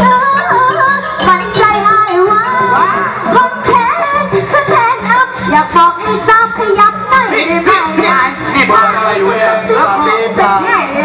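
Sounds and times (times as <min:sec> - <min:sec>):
backing music with steady beat: 0:00.0 - 0:11.0.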